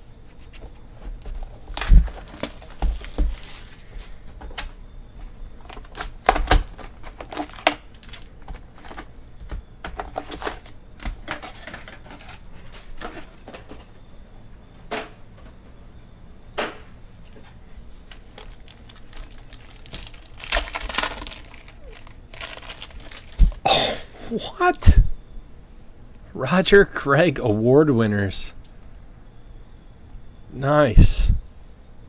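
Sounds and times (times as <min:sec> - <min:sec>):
foil packs crinkling: 0:01.3 - 0:04.2, 0:05.6 - 0:09.1, 0:18.1 - 0:23.7.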